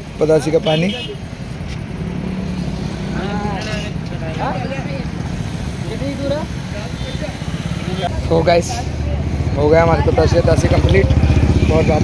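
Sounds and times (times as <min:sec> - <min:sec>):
traffic engines droning: 0:00.0 - 0:12.0
faint voices talking: 0:03.0 - 0:12.0.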